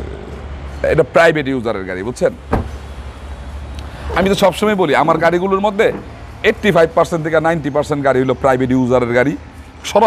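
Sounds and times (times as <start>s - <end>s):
car door shutting: 2.5s - 2.8s.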